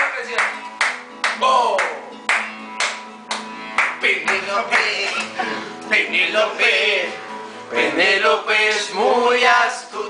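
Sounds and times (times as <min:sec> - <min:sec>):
hands clapping a steady beat: 0:00.0 - 0:05.4
acoustic guitar: 0:00.0 - 0:10.0
men singing and calling out: 0:03.8 - 0:10.0.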